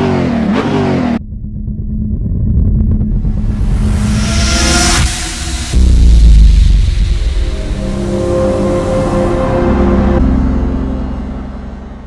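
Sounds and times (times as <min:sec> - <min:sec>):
low engine rumble: 0:01.2 - 0:12.0.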